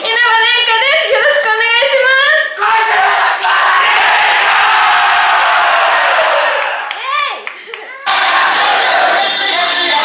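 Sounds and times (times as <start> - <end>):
crowd shouting and cheering: 2.5 - 10.0.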